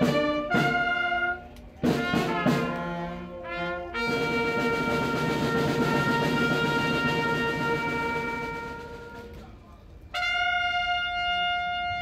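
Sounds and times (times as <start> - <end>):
brass band holding chord: 0.0 - 12.0.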